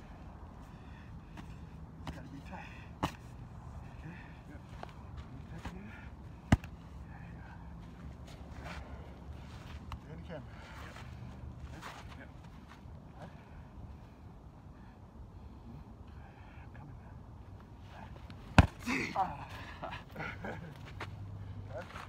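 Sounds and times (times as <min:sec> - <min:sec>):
boxing gloves hitting strike shield: 0:18.6 - 0:18.9.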